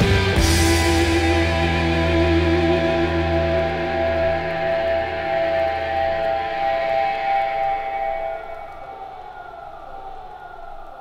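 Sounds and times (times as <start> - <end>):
distorted electric guitar chord: 0.0 - 8.7.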